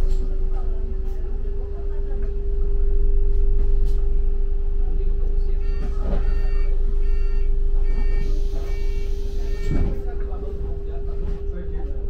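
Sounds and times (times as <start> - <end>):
bus engine rumble and whine: 0.0 - 12.0.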